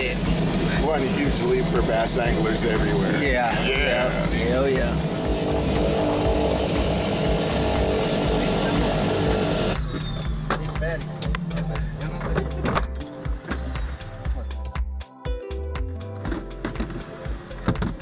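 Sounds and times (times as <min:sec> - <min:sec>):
propeller airplane cabin noise: 0:00.0 - 0:14.4
background music with a beat: 0:00.0 - 0:18.0.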